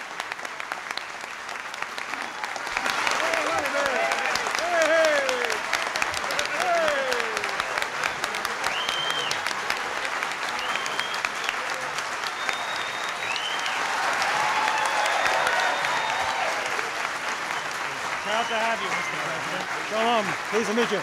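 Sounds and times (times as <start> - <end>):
crowd applauding: 0.0 - 21.0.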